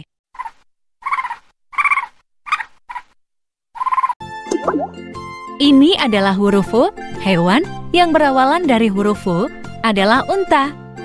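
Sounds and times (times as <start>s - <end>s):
squirrel chattering: 0.4s - 3.1s
children's music: 4.3s - 10.7s.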